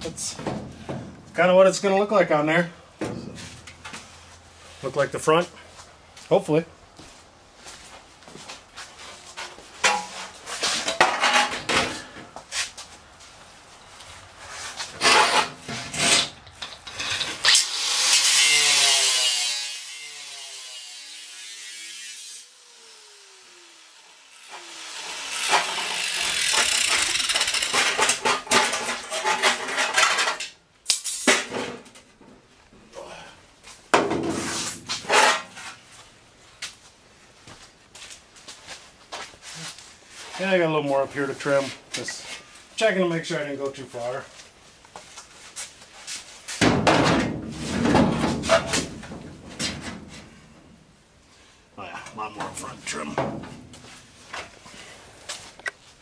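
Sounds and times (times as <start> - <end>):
angle grinder cutting metal: 17.0 - 29.6.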